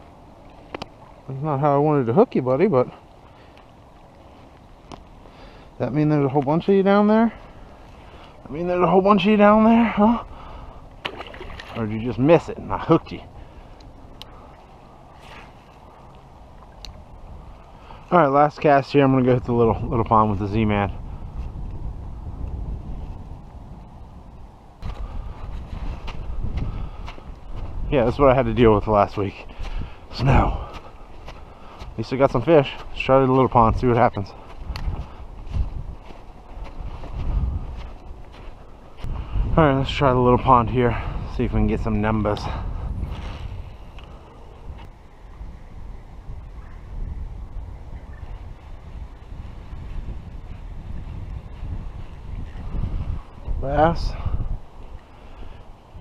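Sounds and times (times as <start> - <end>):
wind buffeting microphone: 0.0 - 56.0
footsteps crunching through snow: 24.8 - 28.4, 29.3 - 39.3.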